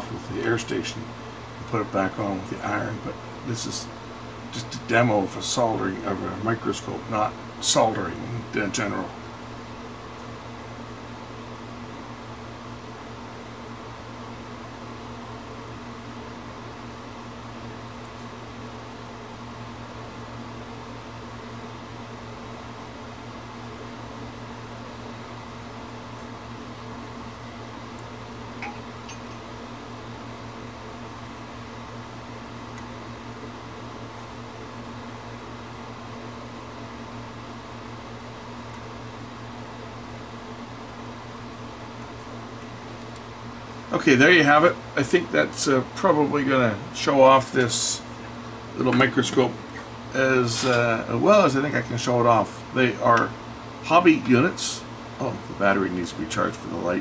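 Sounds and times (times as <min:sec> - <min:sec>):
electrical hum with fan hiss: 0:00.0 - 0:57.0.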